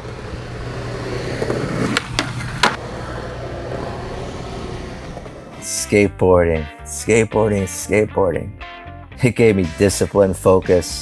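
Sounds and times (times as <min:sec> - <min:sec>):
skateboard clacks: 0:00.0 - 0:02.9
skateboard wheels rolling on pavement: 0:00.0 - 0:05.7.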